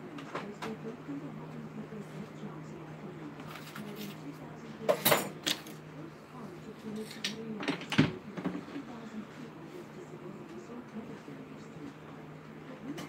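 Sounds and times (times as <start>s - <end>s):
kitchen utensils and dishes clattering: 4.9s - 5.8s.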